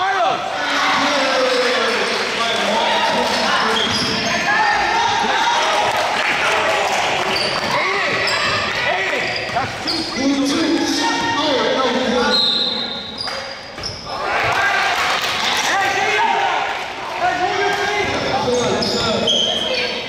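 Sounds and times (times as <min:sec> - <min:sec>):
shoe squeaks: 0:03.7 - 0:04.5, 0:07.3 - 0:10.5, 0:12.2 - 0:14.1, 0:18.4 - 0:20.0
people shouting: 0:14.1 - 0:17.4.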